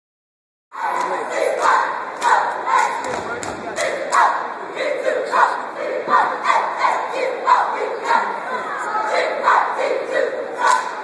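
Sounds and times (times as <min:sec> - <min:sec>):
cheerleaders shouting a cheer: 0:00.8 - 0:11.0
sharp hand claps: 0:02.2 - 0:04.2.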